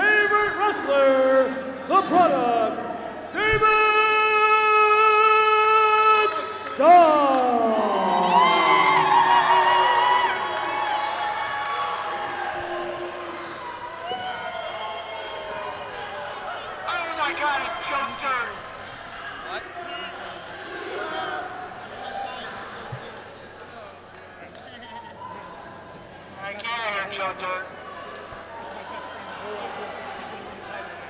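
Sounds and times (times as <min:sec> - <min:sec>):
crowd cheering and shouting: 0:03.4 - 0:23.1.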